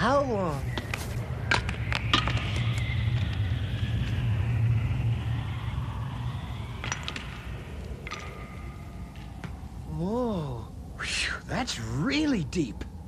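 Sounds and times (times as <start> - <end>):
steady low rumble: 0.0 - 13.0
faint wavering whistle: 0.8 - 9.2.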